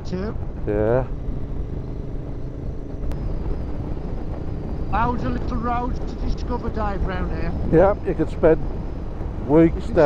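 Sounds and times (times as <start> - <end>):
motorcycle engine cruising: 0.0 - 10.0
wind and road noise: 0.0 - 10.0.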